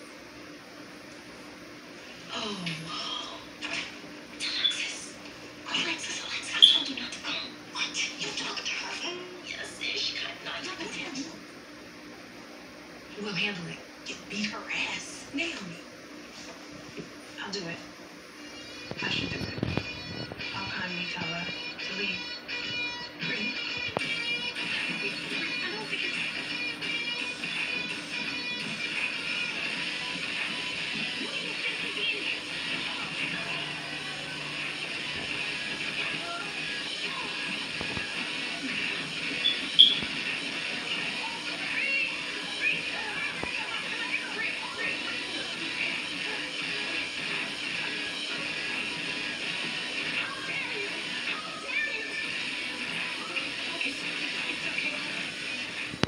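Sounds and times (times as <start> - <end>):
voices from television: 0.0 - 56.0.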